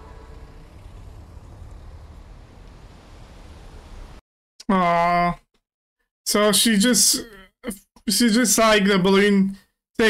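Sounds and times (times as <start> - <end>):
steady low rumble: 0.0 - 4.2.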